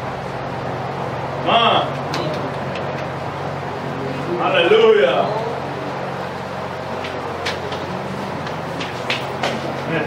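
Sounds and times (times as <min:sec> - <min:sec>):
steady low hum: 0:00.0 - 0:10.0.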